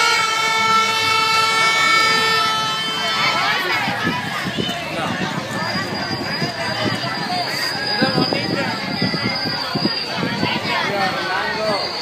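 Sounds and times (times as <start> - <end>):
horn long held note: 0.0 - 3.5.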